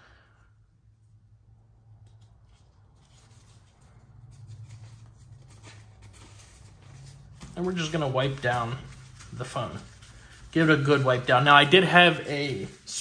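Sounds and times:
wipe packet rustling and tearing: 2.1 - 13.0.

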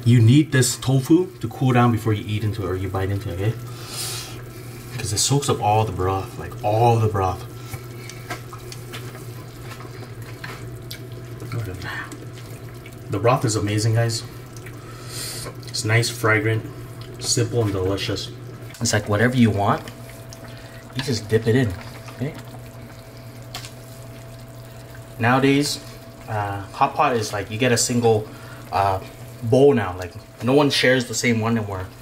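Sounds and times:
broth bubbling in pot: 0.0 - 32.0
constant low hum: 0.0 - 32.0.

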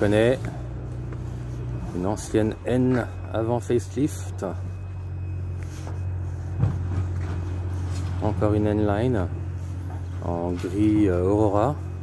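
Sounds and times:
low engine-like rumble: 0.0 - 12.0.

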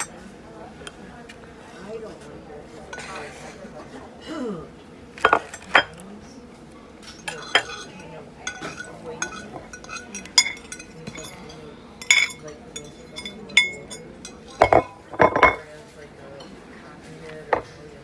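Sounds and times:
plates and cutlery clinking: 2.8 - 3.8, 5.2 - 6.0, 7.0 - 17.9.

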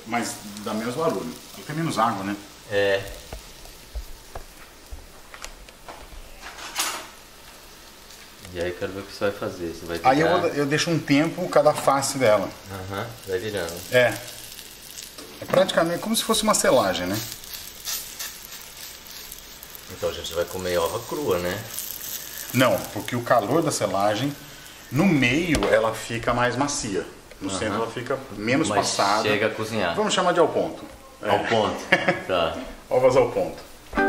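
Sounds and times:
food sizzling in frying pan: 0.0 - 34.0.

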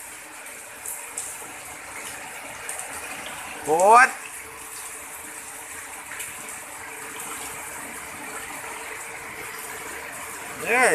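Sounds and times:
rain falling on wet paving: 0.0 - 10.9.

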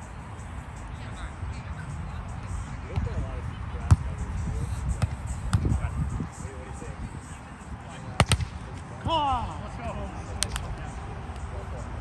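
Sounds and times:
volleyball being hit: 8.2 - 8.6.

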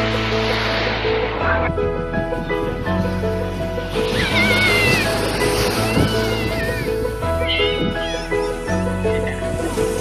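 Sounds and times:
background music sustained notes: 0.0 - 10.0
high wavering animal-like cries: 4.1 - 5.2, 5.8 - 8.7.

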